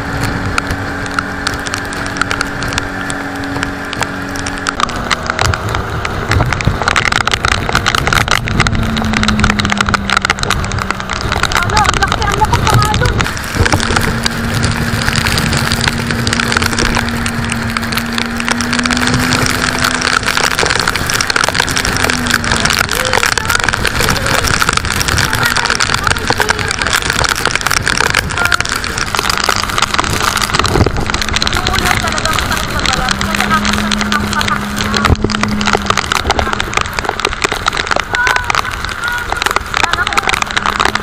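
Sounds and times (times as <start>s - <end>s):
boat engine droning: 0.0s - 41.0s
storm wind and rain: 0.0s - 41.0s
wind buffeting microphone: 0.0s - 41.0s.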